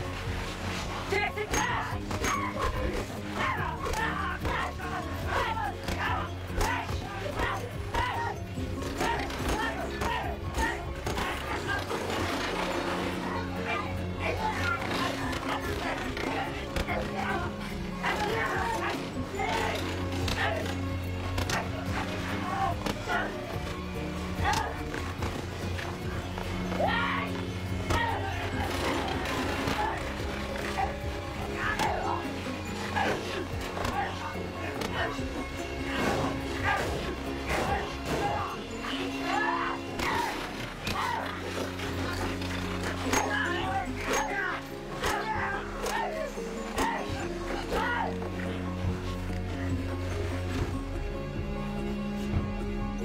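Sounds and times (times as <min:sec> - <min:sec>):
men yelling and grunting: 0:00.0 - 0:52.5
fight scene music: 0:00.0 - 0:52.8.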